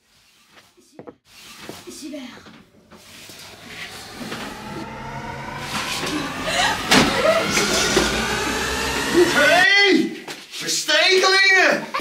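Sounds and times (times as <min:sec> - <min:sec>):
rising multi-pitch tone: 0:02.6 - 0:10.1.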